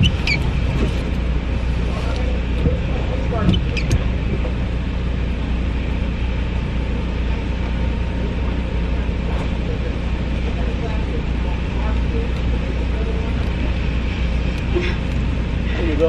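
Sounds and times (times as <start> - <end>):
car idling from inside: 0.0 - 16.0.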